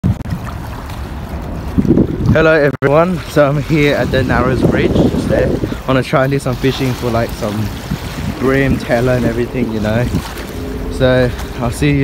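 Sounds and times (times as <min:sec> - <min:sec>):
wind rumbling on microphone: 0:00.0 - 0:12.0
small waves lapping on sand: 0:00.1 - 0:12.0.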